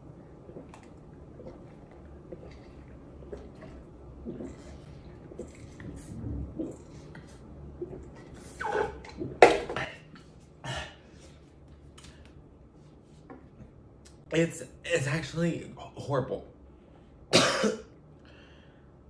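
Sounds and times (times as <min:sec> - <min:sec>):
person coughing and spluttering: 0:01.4 - 0:07.2, 0:08.6 - 0:11.1, 0:17.3 - 0:18.0.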